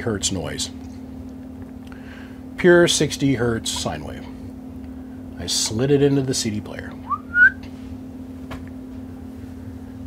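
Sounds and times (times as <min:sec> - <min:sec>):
low hum: 0:00.0 - 0:10.0
man whistling rising note: 0:07.1 - 0:07.6.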